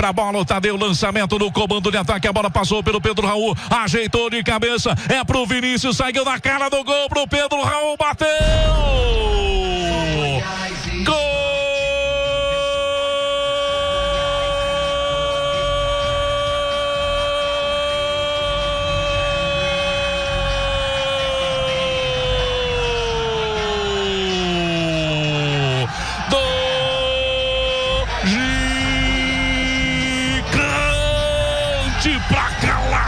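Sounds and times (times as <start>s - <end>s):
commentator shouting long goal cry: 7.2s - 33.0s.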